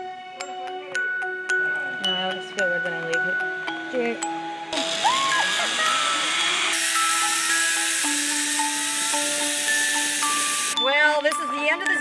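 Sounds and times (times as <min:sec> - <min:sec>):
sustained background music: 0:00.0 - 0:12.0
zipline pulleys whirring on cable: 0:04.7 - 0:10.8.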